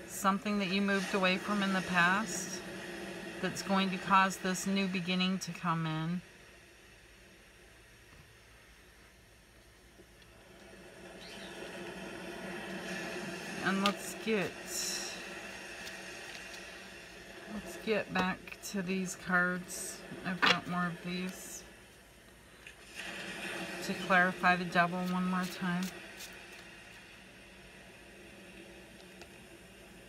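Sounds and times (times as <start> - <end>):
cards rustling and sliding: 15.8 - 16.8, 25.0 - 26.7.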